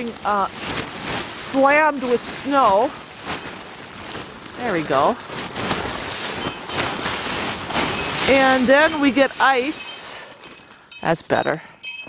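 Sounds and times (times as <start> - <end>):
snow sliding off tarp: 0.0 - 10.2
plastic tarp crinkling: 0.0 - 10.9.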